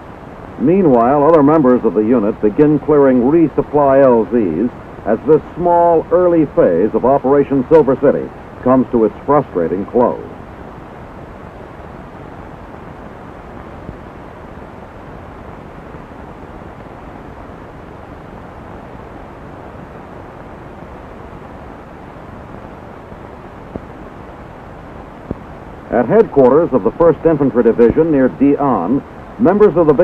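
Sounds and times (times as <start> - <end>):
film soundtrack hiss and rumble: 0.0 - 30.0.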